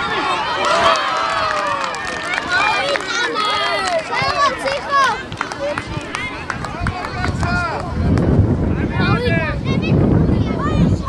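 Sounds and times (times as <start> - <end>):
children shouting: 0.0 - 7.7.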